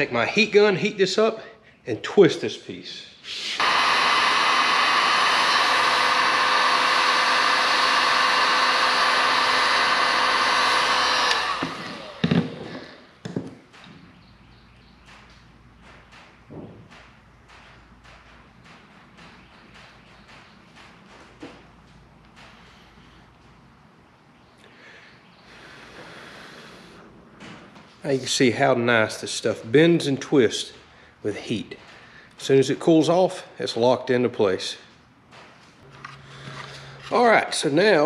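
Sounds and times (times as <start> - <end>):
heat gun fan whirring: 3.6 - 38.0.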